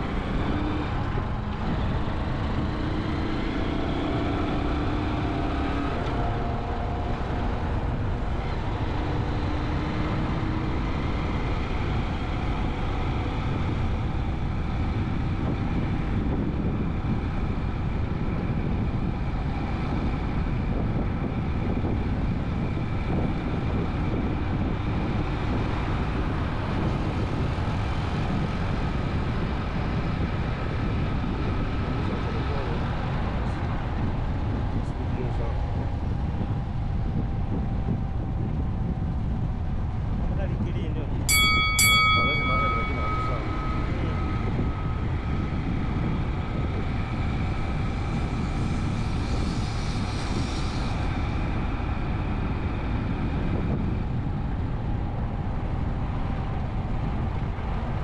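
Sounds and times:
vehicle driving rumble: 0.0 - 58.0
faint whining tone: 41.3 - 47.8.

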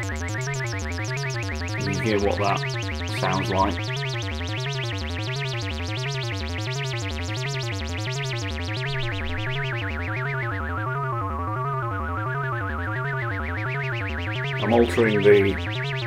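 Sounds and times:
buzzy synthesizer tone gliding: 0.0 - 16.0.

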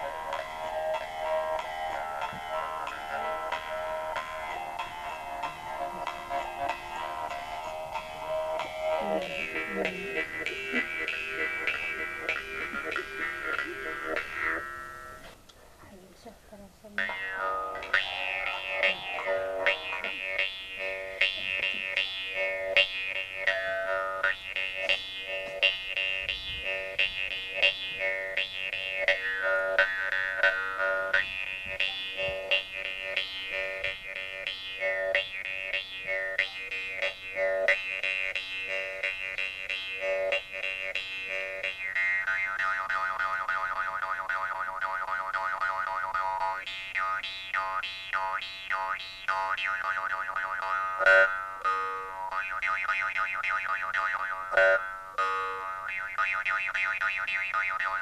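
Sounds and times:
jaw harps twanging: 0.0 - 15.4, 17.0 - 58.0.

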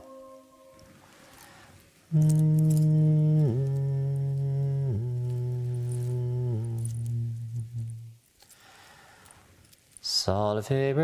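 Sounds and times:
man humming low note: 2.1 - 8.2.

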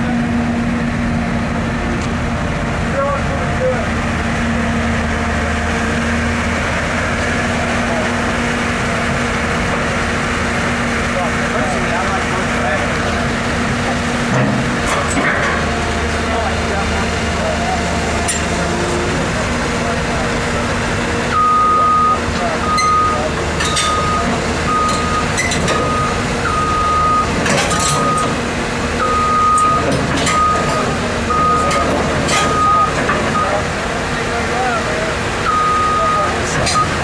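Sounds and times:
excavator diesel engine running: 0.0 - 37.0.

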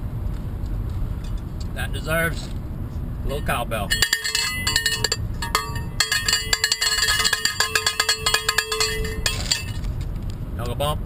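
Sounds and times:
cowbell struck: 3.9 - 9.8.

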